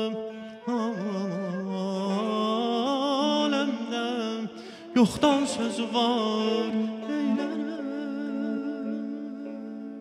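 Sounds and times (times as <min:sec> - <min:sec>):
traditional instrumental ensemble: 0:00.0 - 0:10.0.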